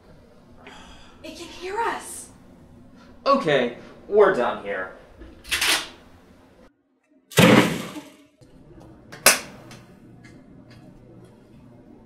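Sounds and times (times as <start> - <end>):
remote smashing crash: 7.3 - 8.2
sharp crack: 7.3 - 8.2.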